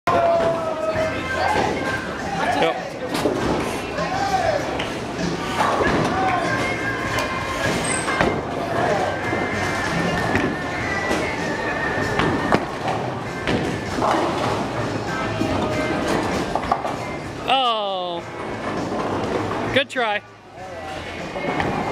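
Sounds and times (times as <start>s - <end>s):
people chattering: 0.1s - 13.5s, 14.7s - 18.3s
background music: 0.1s - 21.9s
bowling balls knocking pins: 7.7s - 17.0s.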